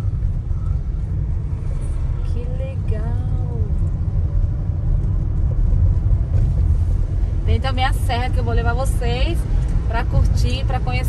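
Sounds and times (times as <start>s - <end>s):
car driving on paved road: 0.0s - 11.0s.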